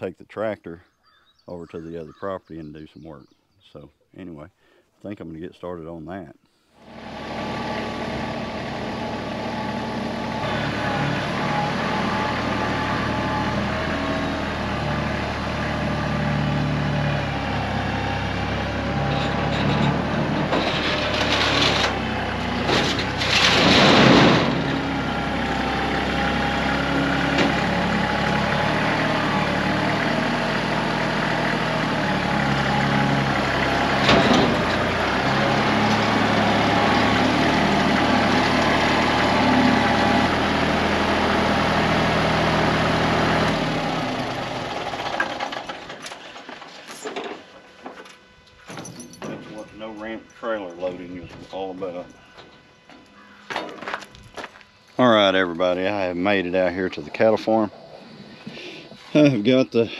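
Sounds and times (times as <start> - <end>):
tractor diesel engine running: 6.8 - 59.9.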